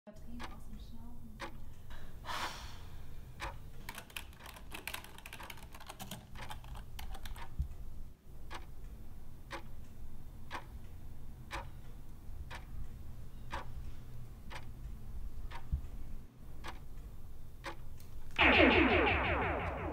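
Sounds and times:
clock ticking: 0.2 - 2.2, 3.1 - 19.9
fast typing on keyboard: 3.8 - 7.5.

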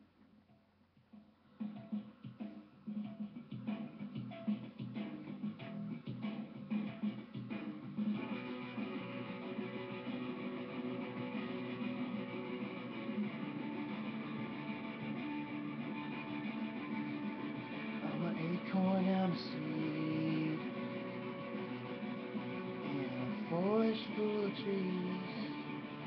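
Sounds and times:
guitar chords ringing: 7.4 - 26.0
person singing: 17.8 - 26.0.

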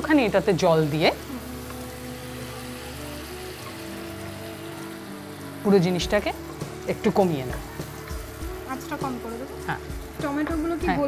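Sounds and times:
tomatoes frying: 0.0 - 11.0
water pouring into a pan: 0.0 - 11.0.

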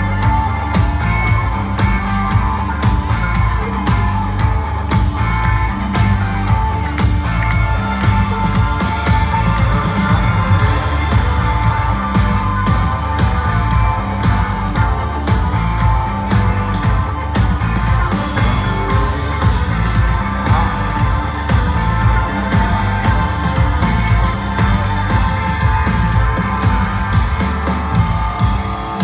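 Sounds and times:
heavy bass: 0.0 - 29.0
live rock band playing: 0.0 - 29.0
steady drum beat: 0.0 - 29.0.

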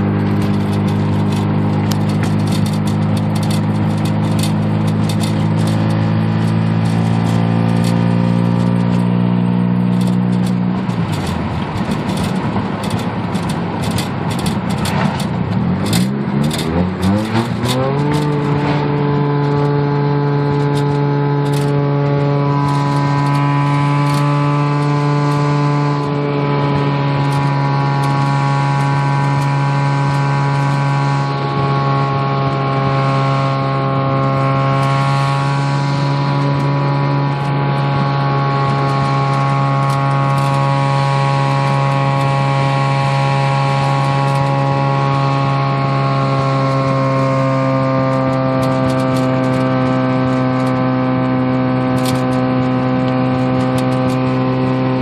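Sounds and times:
rotary engine droning: 0.0 - 55.0.

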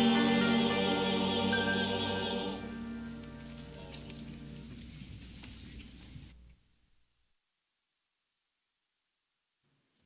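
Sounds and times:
congregation singing a hymn: 0.0 - 3.1.

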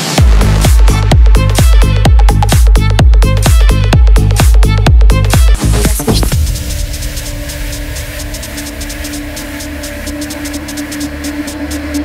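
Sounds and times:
deep bass: 0.0 - 12.0
fast ticking hi-hat: 0.1 - 12.0
held low synth tone: 3.9 - 12.0.

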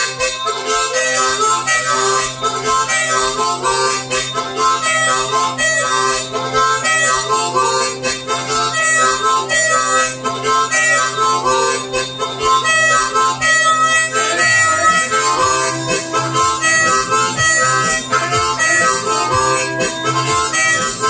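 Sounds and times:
harmonica playing: 0.0 - 21.0.

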